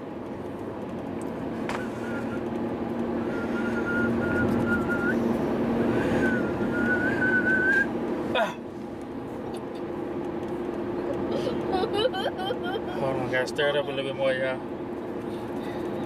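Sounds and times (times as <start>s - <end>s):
car cabin drone: 0.0s - 16.0s
person whistling high note: 3.2s - 5.3s, 6.0s - 7.9s.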